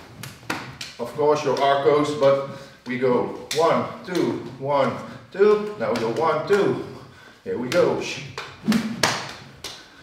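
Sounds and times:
stick tapping against hands: 7.7 - 9.9.

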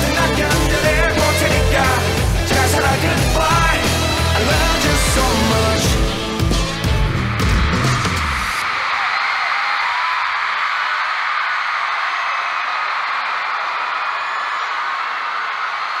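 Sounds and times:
song music: 0.0 - 8.7
stadium crowd cheering and screaming: 0.0 - 16.0.

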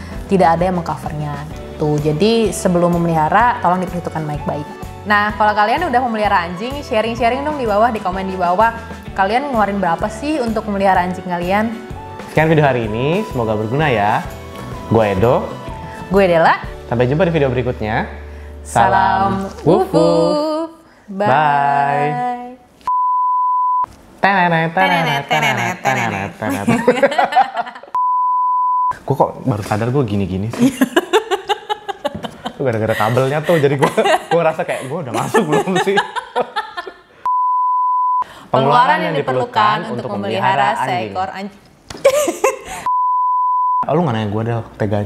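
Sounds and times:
censor bleep tone: 22.9 - 23.9, 28.0 - 29.0, 37.3 - 38.2, 42.9 - 43.9
electronic beep: 22.9 - 23.9, 28.0 - 28.9, 37.3 - 38.2, 42.9 - 43.9.

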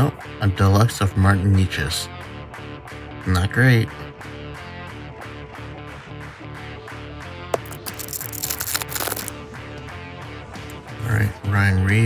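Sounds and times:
background music with beat: 2.0 - 11.4
card click: 7.6 - 9.3
trading cards rustling and sliding: 7.6 - 9.4.

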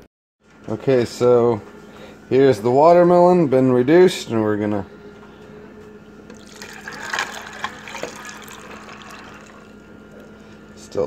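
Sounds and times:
liquid pouring over ice: 6.3 - 9.8.

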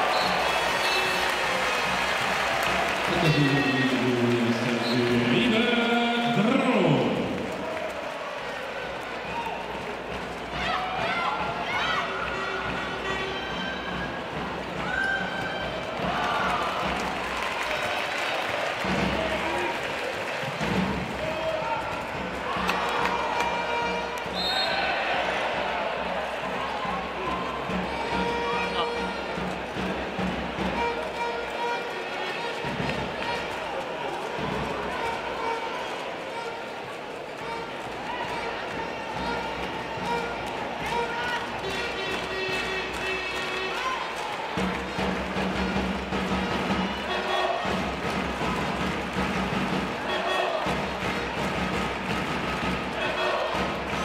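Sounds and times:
arena crowd noise: 0.0 - 54.0
music: 0.0 - 54.0.

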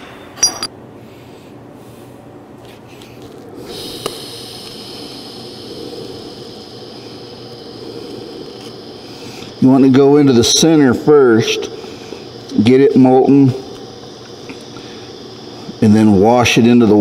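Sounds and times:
welding arc hissing: 3.0 - 17.0.

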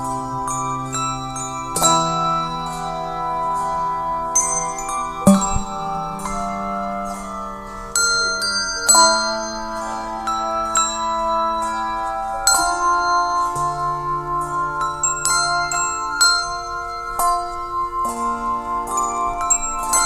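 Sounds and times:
handbell chords ringing: 0.0 - 20.0.

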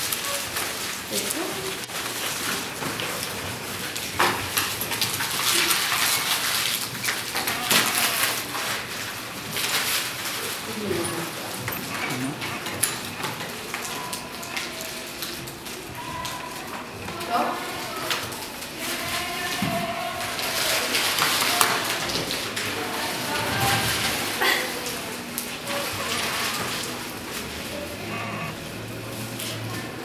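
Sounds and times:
paper and pages rustling: 0.0 - 30.0
students talking: 10.2 - 30.0.

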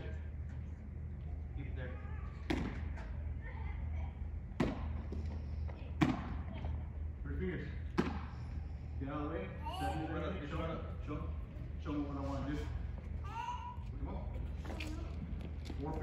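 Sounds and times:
steady low hum: 0.0 - 16.0
baseballs smacking into mitt: 2.4 - 3.1, 4.6 - 5.3, 7.9 - 8.4.

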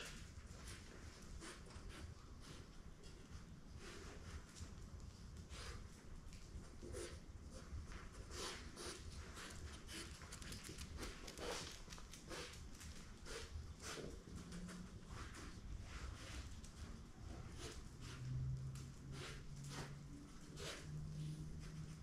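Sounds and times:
puppy paws tapping on concrete: 9.0 - 15.8.

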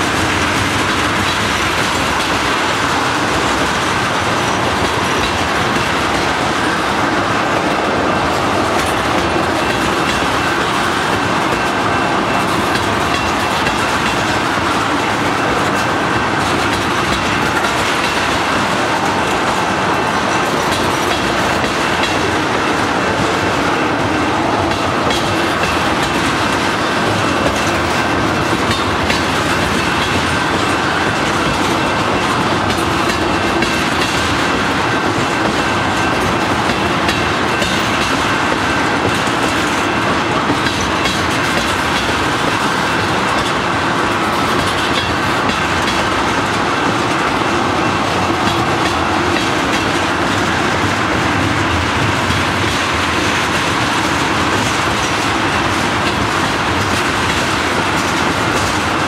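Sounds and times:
freight train rolling past: 0.0 - 59.0
wheels clicking over rail joints: 0.1 - 59.0.

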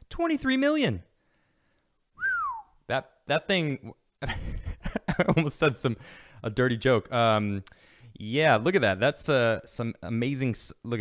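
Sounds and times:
man whistling a rising falling note: 2.2 - 2.8.

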